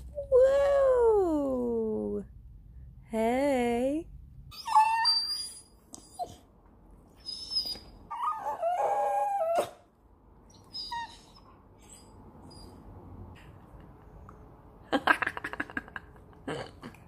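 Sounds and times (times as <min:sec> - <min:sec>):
dog whining: 0:04.5 - 0:06.5, 0:07.1 - 0:09.9, 0:10.5 - 0:12.9.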